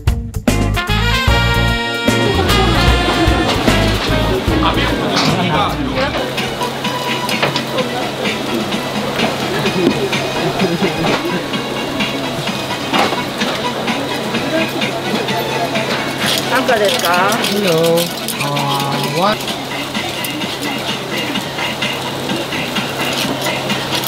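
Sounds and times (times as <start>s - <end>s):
music with bass line: 0.0s - 16.2s
low hum: 1.3s - 7.2s
people chattering: 2.0s - 24.0s.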